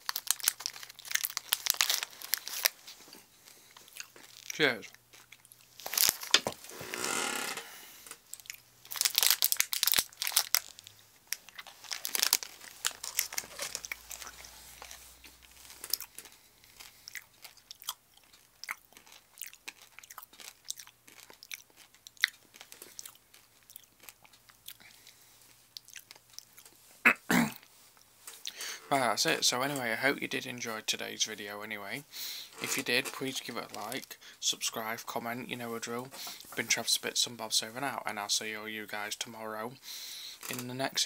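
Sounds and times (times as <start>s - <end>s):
chewing crunchy candy: 0.0s - 6.4s, 8.2s - 26.9s, 32.6s - 34.2s.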